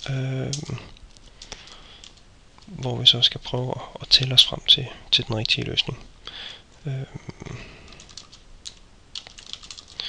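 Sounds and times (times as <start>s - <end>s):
typing on computer keyboard: 7.8s - 10.0s.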